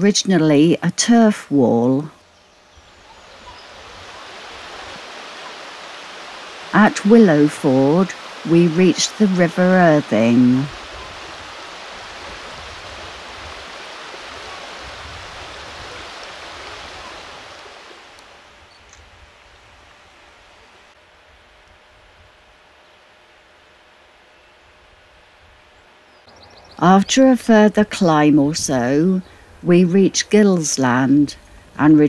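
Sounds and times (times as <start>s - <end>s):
river rushing over stones: 3.2s - 18.6s.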